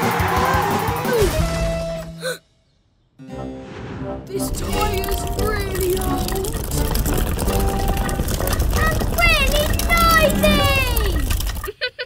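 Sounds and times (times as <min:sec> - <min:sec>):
cartoon background music: 0:00.0 - 0:02.2, 0:03.2 - 0:11.4.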